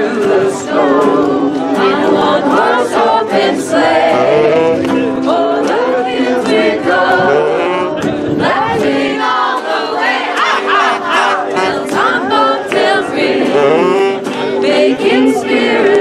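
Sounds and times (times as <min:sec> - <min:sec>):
acoustic guitar: 0:00.0 - 0:16.0
group singing: 0:00.0 - 0:16.0
saxophone: 0:03.8 - 0:05.3, 0:06.2 - 0:08.8, 0:10.4 - 0:15.4.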